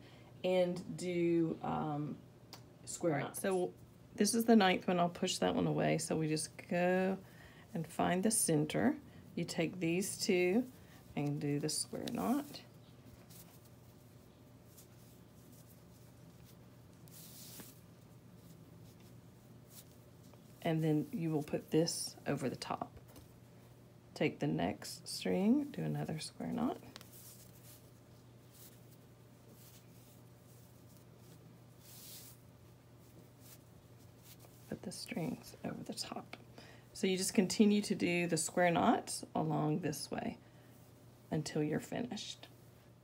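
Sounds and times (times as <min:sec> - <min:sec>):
steady low hum: 0:00.0 - 0:43.0
cord rustling: 0:09.3 - 0:23.5, 0:24.9 - 0:36.4.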